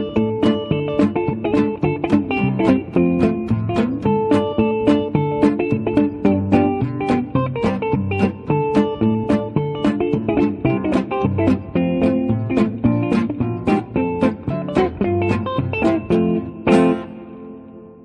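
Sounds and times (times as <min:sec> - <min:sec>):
plucked guitar: 0:00.0 - 0:18.0.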